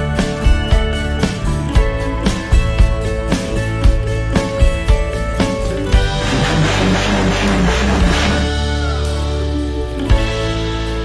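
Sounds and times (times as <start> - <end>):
guitar background music: 0.0 - 11.0.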